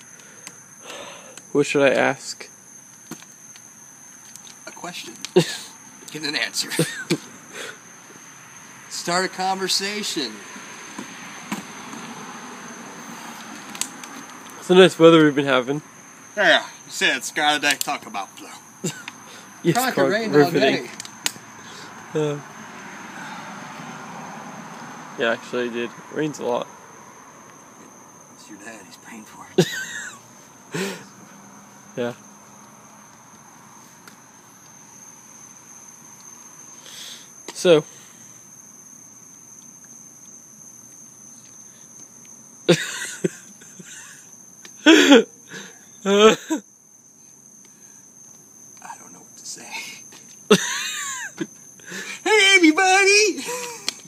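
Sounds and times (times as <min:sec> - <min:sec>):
background hiss: 0:00.0 - 0:54.0
crickets trilling: 0:00.0 - 0:54.0.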